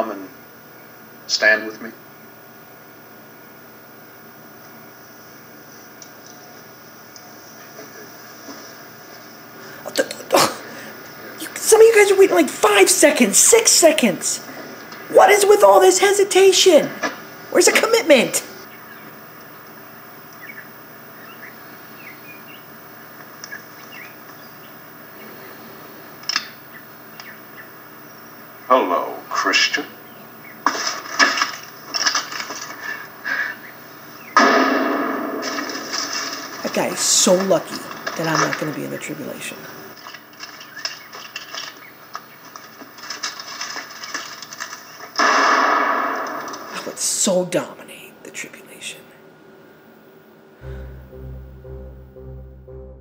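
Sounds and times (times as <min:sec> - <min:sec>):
bird chirps: 0:20.3 - 0:22.7.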